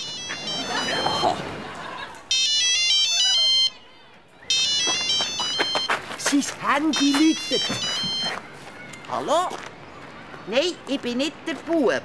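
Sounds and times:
melodic phone ringtone: 0.0s - 1.4s, 2.3s - 3.8s, 4.5s - 6.0s, 6.9s - 8.4s.

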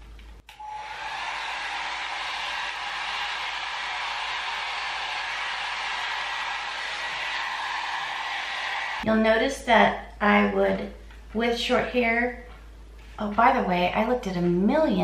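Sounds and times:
hot air brush fan blowing: 0.5s - 9.0s.

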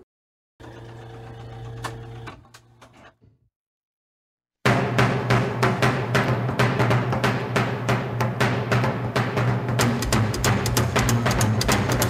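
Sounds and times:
jukebox motor hum: 0.6s - 3.0s.

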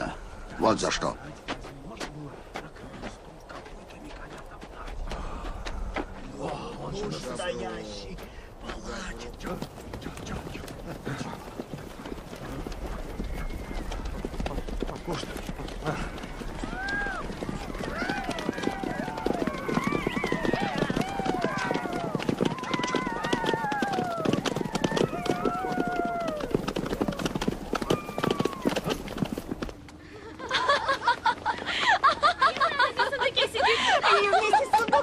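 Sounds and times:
horse hooves clattering: 0.9s - 30.0s
overlapping shouts: 16.6s - 28.7s.

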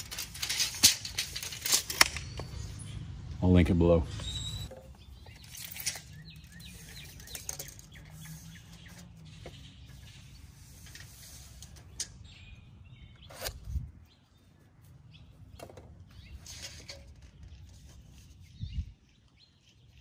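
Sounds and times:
tape measure being drawn out: 0.0s - 2.5s, 9.9s - 12.1s, 13.2s - 13.9s
tape measure retracting rattle: 0.0s - 2.5s, 4.7s - 12.2s, 16.3s - 18.2s
faint bird chirps: 4.1s - 10.7s.

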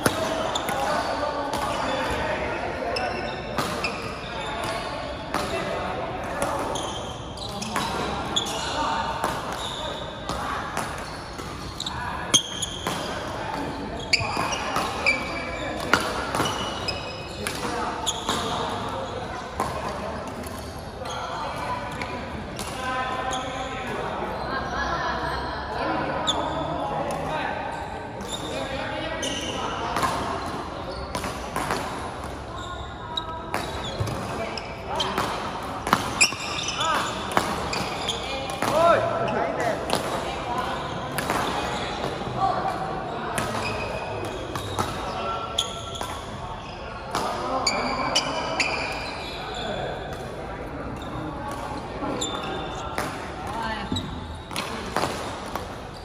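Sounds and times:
murmur of voices: 0.0s - 56.0s
shoes squeaking on court floor: 0.0s - 56.0s
racket hitting shuttlecock: 35.0s - 38.8s, 52.9s - 55.8s.

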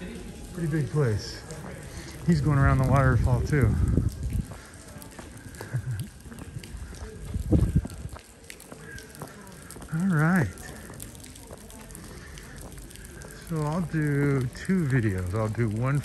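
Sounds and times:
low rumbling on microphone: 1.5s - 8.3s.

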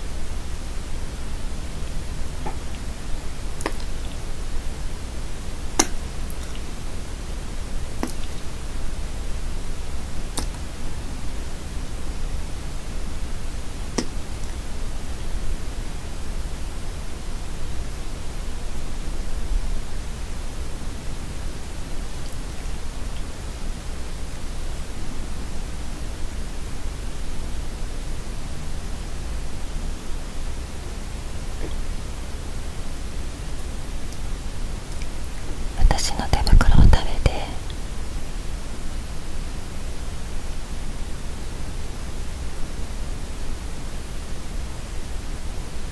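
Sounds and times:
microphone hiss: 0.0s - 45.9s.

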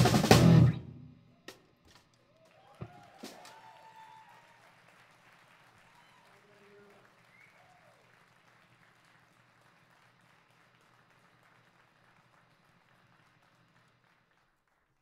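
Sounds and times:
faint audience applause: 2.3s - 15.0s.

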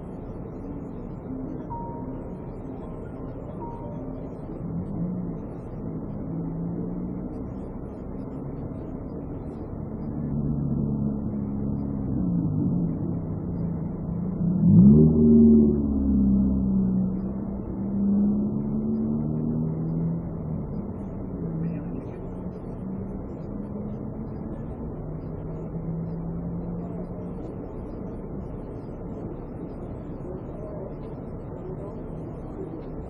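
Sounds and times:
car engine running: 0.0s - 33.0s.

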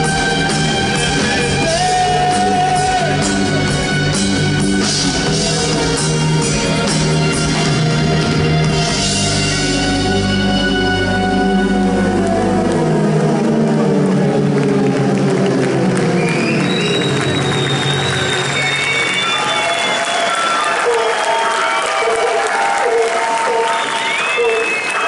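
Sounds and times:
audience applauding and cheering: 0.0s - 25.0s.

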